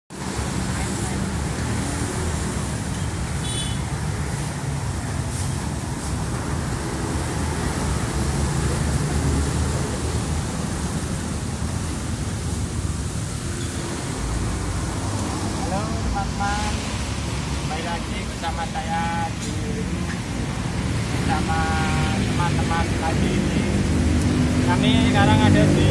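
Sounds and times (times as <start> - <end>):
street traffic rumble: 0.1 - 25.9.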